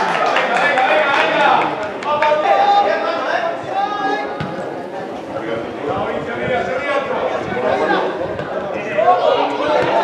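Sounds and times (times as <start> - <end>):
ball being kicked: 4.4 - 4.6.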